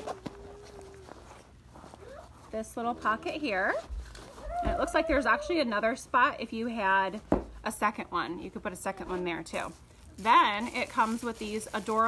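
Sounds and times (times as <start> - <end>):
fabric bag handling: 9.1 - 12.0.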